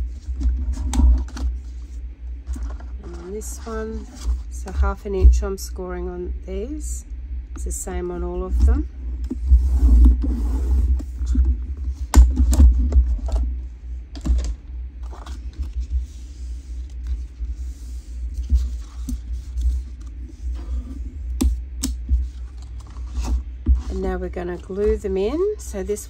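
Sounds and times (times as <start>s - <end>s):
paper handling: 0.1s - 4.8s.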